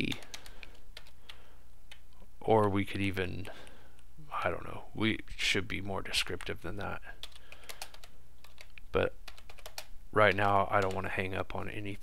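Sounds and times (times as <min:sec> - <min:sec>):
keyboard typing clicks: 0:00.0 - 0:02.0, 0:07.2 - 0:11.0.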